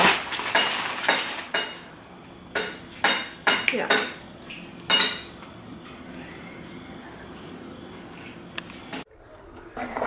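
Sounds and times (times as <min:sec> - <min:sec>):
kitchenware clinking: 0:00.0 - 0:01.9, 0:02.5 - 0:04.2, 0:04.8 - 0:06.0.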